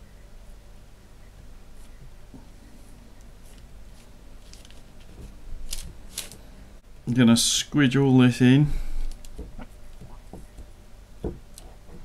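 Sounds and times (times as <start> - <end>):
scratchy rustles: 3.4 - 6.4.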